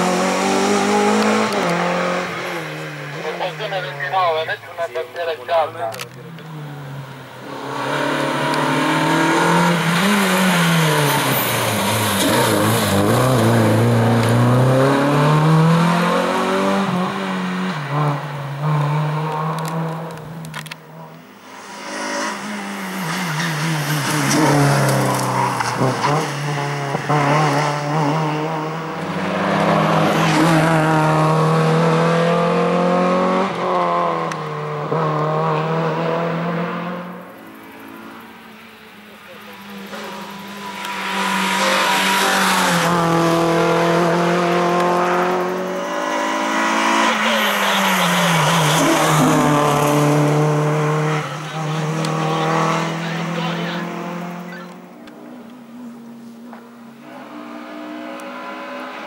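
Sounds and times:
race car engine revving: 0.0s - 59.0s.

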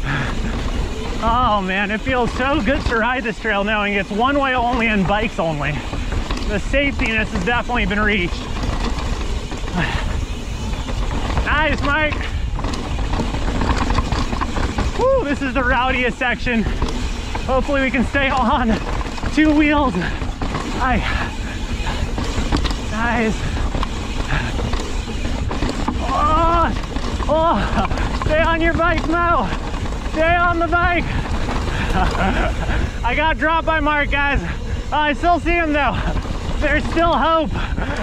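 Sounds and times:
rider calling out: 0.0s - 13.3s, 14.1s - 38.0s
bike tyres rolling on dirt: 0.0s - 38.0s
wind rumble on microphone: 5.6s - 33.2s.

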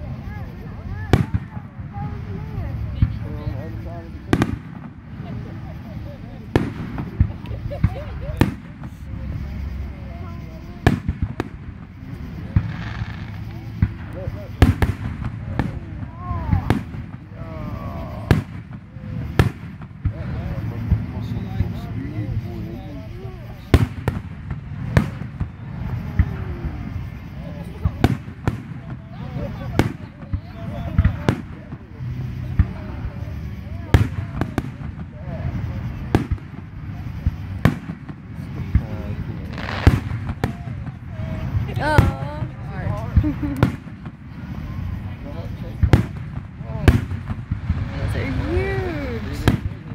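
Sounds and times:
fireworks bangs: 0.0s - 49.9s.

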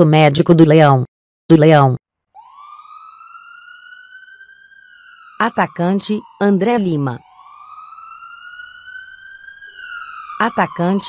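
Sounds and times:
synthetic voice: 0.0s - 2.0s, 5.4s - 7.2s, 10.4s - 11.0s
ambulance siren wail: 2.3s - 11.0s.

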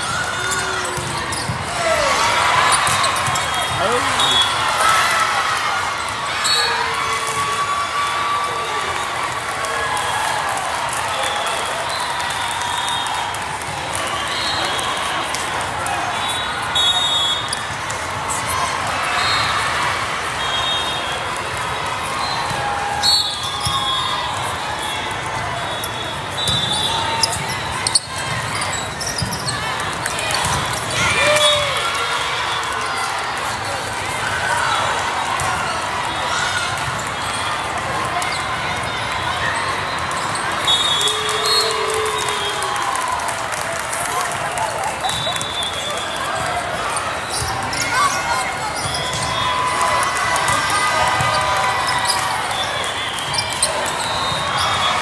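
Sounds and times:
din of many voices: 0.0s - 7.4s.

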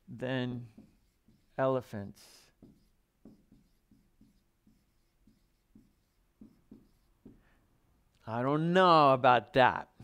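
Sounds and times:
marker writing on whiteboard: 0.4s - 7.5s.

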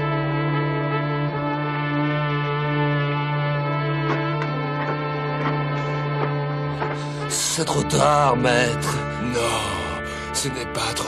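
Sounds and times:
sustained orchestral brass chord: 0.0s - 11.0s.

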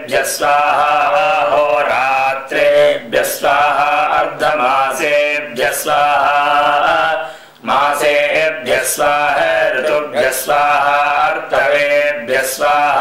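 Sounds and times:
man chanting: 0.0s - 13.0s.

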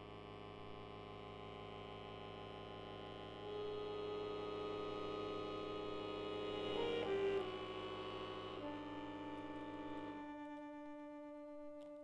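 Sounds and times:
accordion chord: 3.4s - 12.0s.

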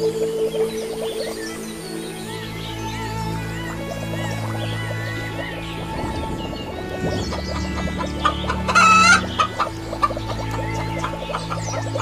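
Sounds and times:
background music: 0.0s - 12.0s
chickens clucking: 4.4s - 12.0s.

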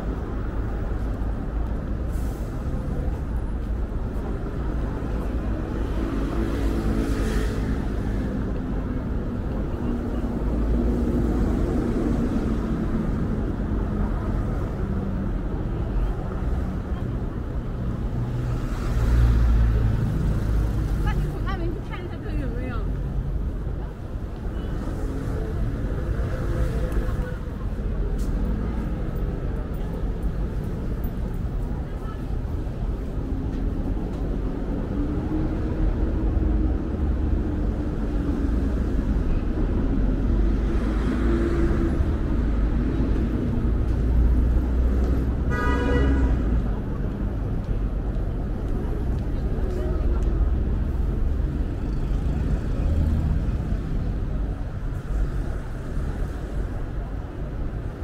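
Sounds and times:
passers-by talking: 0.0s - 58.0s
passing vehicle: 0.0s - 58.0s
road traffic rumble: 0.0s - 58.0s.

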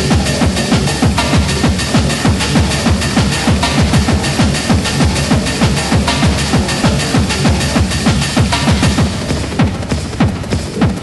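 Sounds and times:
distorted kick drum: 0.0s - 11.0s
synth and percussion wash: 0.0s - 11.0s.

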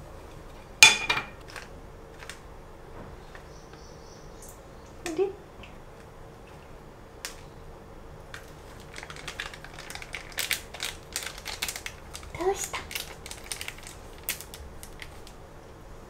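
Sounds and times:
faint steady hum: 0.0s - 16.0s
foil packet crinkling: 1.4s - 2.4s, 8.3s - 15.4s.

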